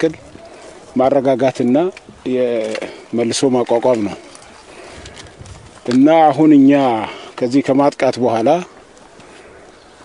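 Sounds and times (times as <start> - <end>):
man speaking: 0.0 - 4.7, 5.8 - 8.8.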